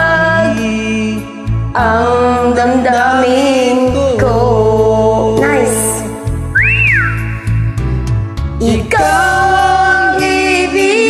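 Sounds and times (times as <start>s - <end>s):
karaoke backing music: 0.0s - 11.0s
sliding high tone: 5.4s - 7.9s.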